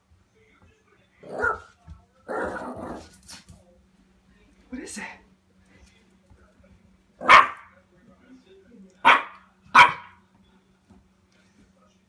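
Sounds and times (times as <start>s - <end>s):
puppy barking: 1.2s - 1.7s, 7.2s - 7.7s, 9.0s - 10.2s.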